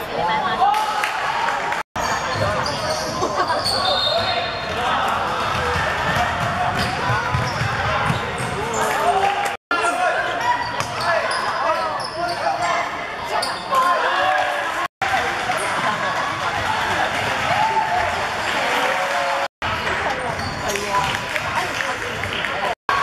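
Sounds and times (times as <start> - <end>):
people shouting and chatting: 0.0 - 23.0
basketball bouncing on hardwood: 5.5 - 8.5.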